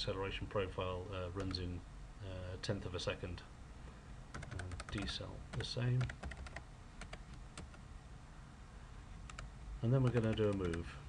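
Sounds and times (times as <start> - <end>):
faint background hum: 0.0 - 11.0
computer keyboard keystrokes: 4.3 - 7.8, 9.3 - 10.9.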